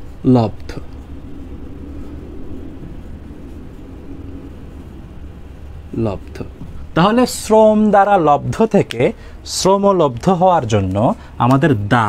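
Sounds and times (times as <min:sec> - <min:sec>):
faint hum: 0:00.0 - 0:12.0
low background rumble: 0:00.0 - 0:12.0.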